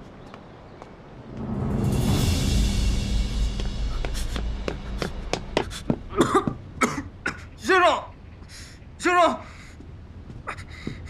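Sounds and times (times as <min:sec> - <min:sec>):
man coughing: 0:04.9 - 0:07.6.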